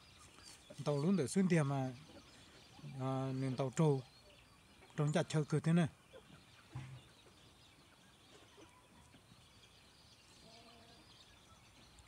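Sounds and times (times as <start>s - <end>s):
faint chicken call: 10.4s - 11.1s.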